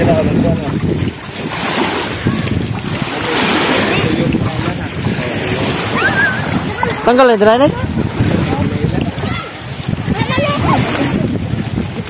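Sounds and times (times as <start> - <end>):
faint voices: 0.0 - 12.0
small waves washing on sand: 0.0 - 12.0
wind buffeting microphone: 0.0 - 12.0.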